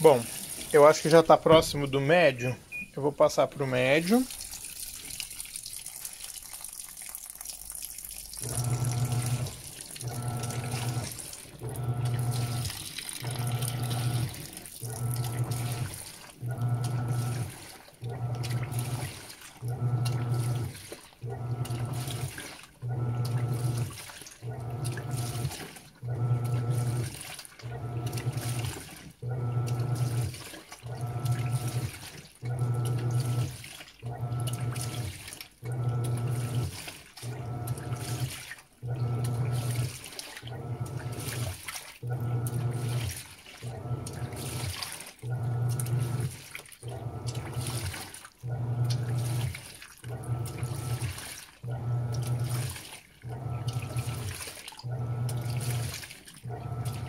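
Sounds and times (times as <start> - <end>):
washing machine motor humming: 0.0 - 4.5, 8.2 - 57.0
water and laundry swishing: 0.0 - 6.8, 8.1 - 57.0.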